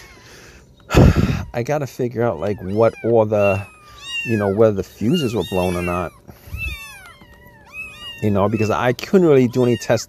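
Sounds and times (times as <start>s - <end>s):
faint steady hum: 0.0s - 10.0s
cat meowing: 2.2s - 10.0s.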